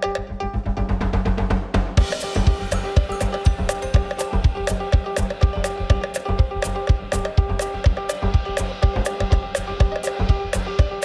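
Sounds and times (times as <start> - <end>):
drum kit beat: 0.0 - 11.0
piano bass and drums jazz trio: 1.3 - 11.0.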